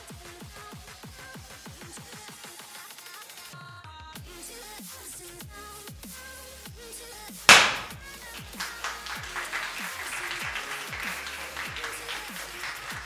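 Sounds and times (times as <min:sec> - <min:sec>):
confetti cannon bang: 0:07.5 - 0:08.1
crowd clapping: 0:07.5 - 0:13.0.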